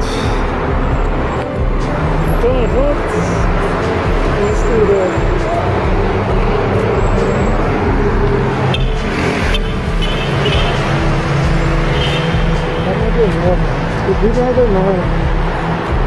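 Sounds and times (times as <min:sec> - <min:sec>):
city road traffic: 0:00.0 - 0:16.0.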